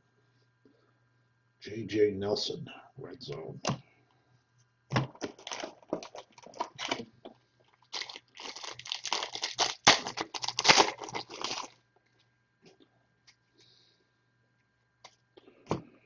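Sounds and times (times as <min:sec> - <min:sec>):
foil wrapper crinkling: 0:05.2 - 0:07.0, 0:07.7 - 0:11.8.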